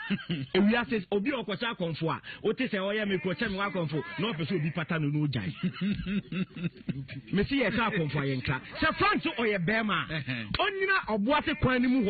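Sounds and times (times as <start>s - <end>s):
man laughing: 0.0s - 0.7s, 3.6s - 9.2s, 10.0s - 10.6s.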